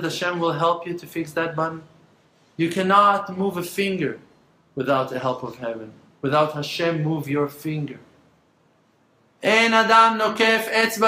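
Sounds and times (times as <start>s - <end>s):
man speaking: 0.0s - 2.0s, 2.6s - 8.2s, 9.4s - 11.0s.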